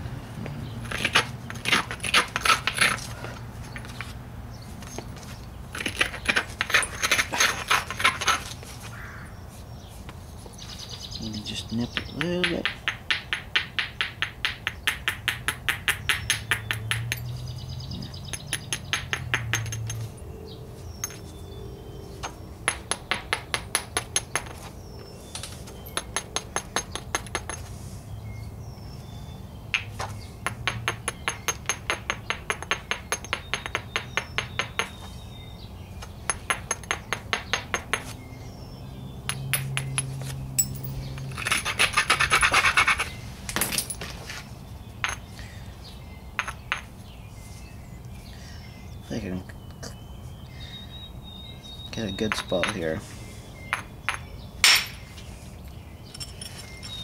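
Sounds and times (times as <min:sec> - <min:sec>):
stone scraping on stone: 0:05.8 - 0:08.6, 0:40.6 - 0:43.2.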